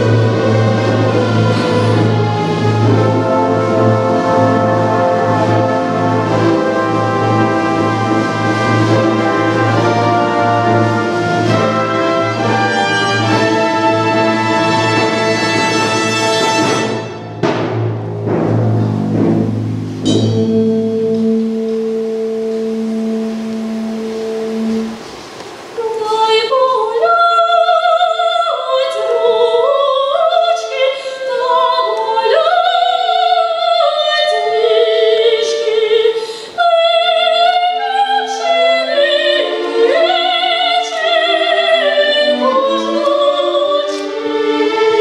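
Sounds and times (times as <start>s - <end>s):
orchestra playing loud operatic music: 0.0s - 25.8s, 37.0s - 45.0s
woman singing: 25.8s - 45.0s.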